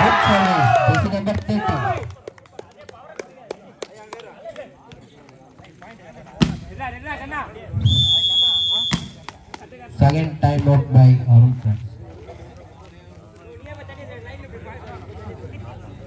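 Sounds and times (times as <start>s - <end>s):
players' voices: 0.0s - 16.0s
high whistle-like tone: 7.8s - 9.2s
ball thud: 8.9s - 9.4s.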